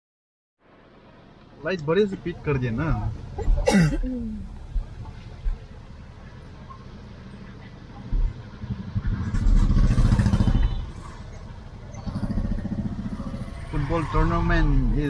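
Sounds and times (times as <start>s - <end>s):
motorcycle engines passing: 6.4s - 15.0s.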